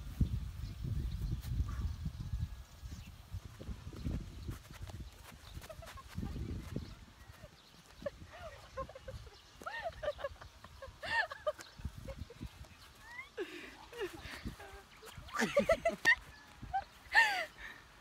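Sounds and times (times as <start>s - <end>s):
wind buffeting microphone: 0.0s - 17.5s.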